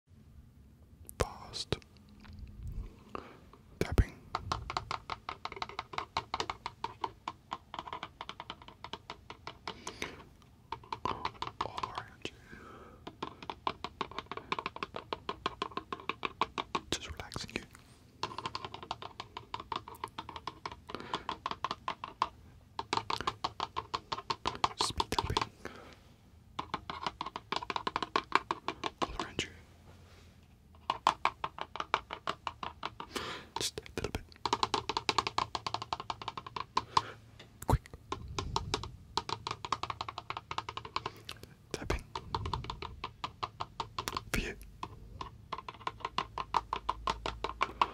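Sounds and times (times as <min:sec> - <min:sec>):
fingertip tapping: 0:03.2 - 0:29.6, 0:30.7 - 0:47.9.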